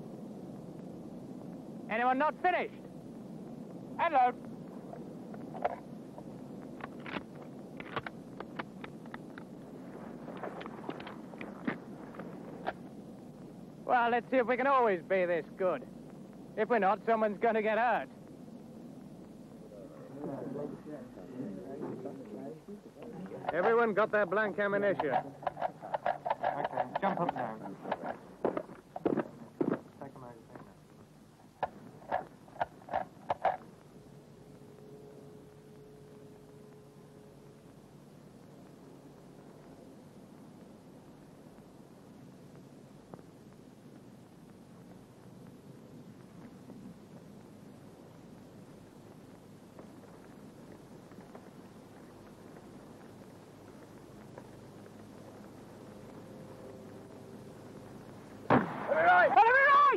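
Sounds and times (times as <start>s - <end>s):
wind noise: 2.7s - 13.9s
person shouting: 58.9s - 59.9s.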